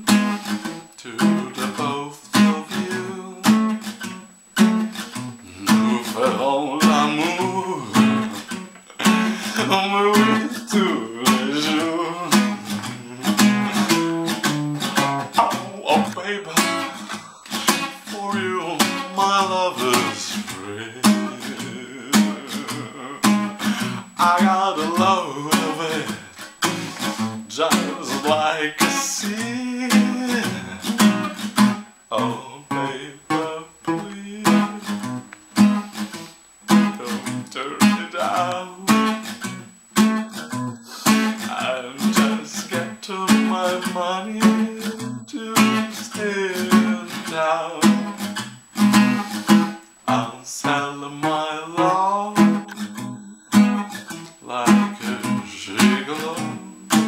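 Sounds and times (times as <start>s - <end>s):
acoustic guitar strums: 0.0s - 57.0s.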